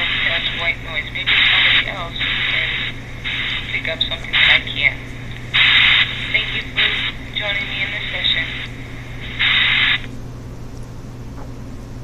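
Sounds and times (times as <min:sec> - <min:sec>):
bursts of hiss: 0:00.0 - 0:10.1
steady low hum: 0:00.0 - 0:12.0.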